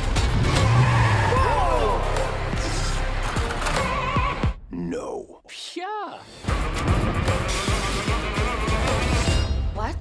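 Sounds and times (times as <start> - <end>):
trailer music: 0.0 - 5.3, 6.2 - 10.0.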